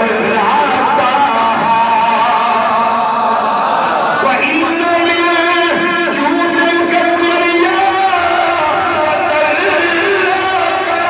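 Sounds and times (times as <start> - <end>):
man chanting into microphone: 0.0 - 3.4, 4.1 - 11.0.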